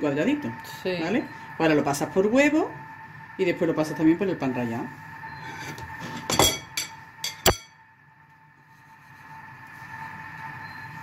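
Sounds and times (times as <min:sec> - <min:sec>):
fork clinking against ceramic bowl: 0:06.3 - 0:07.8.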